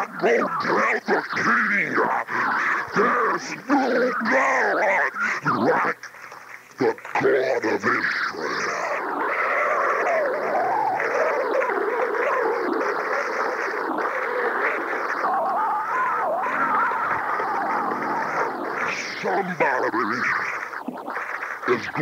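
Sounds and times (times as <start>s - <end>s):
congregation shouting and praising: 0.0s - 20.8s.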